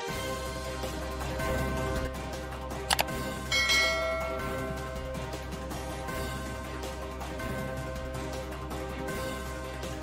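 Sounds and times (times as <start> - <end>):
background music: 0.0 - 10.0
bell chime: 3.5 - 5.3.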